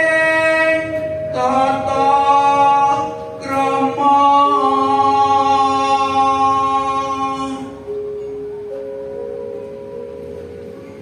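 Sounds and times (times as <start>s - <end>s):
person singing a long note: 0.0s - 8.0s.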